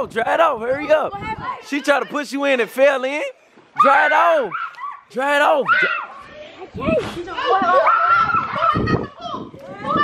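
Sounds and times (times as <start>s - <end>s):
kids shrieking and squealing: 3.8s - 10.0s.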